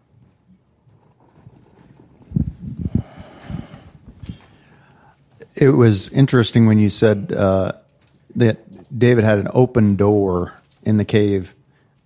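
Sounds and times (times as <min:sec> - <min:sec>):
rustling: 0:00.0 - 0:05.4
microphone handling thumps: 0:02.2 - 0:04.8.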